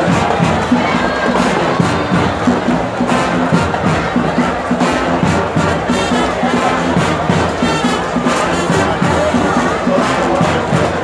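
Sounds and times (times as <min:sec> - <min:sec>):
crowd cheering: 0:00.0 - 0:11.0
drums beating: 0:00.0 - 0:11.0
marching band brass: 0:00.0 - 0:11.0.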